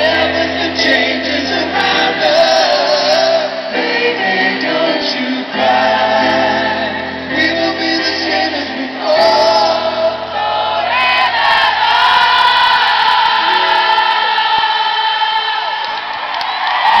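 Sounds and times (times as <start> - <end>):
voices singing long notes: 0.0 - 15.9
large crowd: 0.0 - 17.0
live pop band: 0.0 - 17.0.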